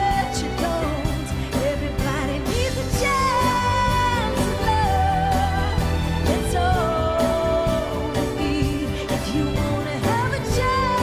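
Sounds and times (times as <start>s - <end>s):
band accompaniment: 0.0s - 11.0s
woman singing pop song: 0.0s - 11.0s.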